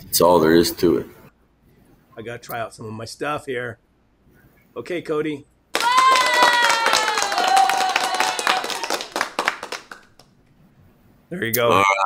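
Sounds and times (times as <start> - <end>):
clapping: 5.7 - 10.3.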